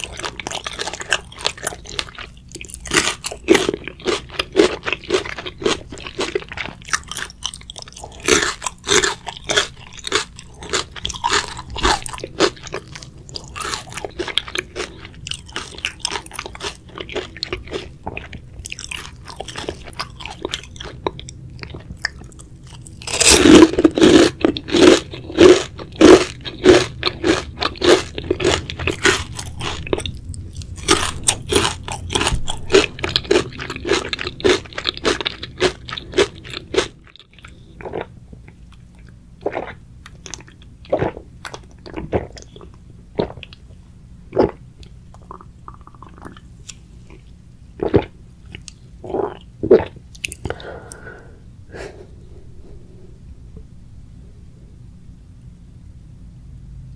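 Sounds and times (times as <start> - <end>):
loud crunching bite: 0.0 - 38.1
crunchy chewing of fried chicken: 0.0 - 52.0.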